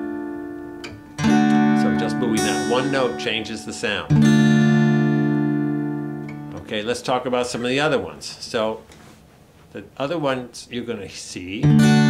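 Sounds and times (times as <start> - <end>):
acoustic guitar chord strummed: 0.0 - 7.1, 11.6 - 12.0.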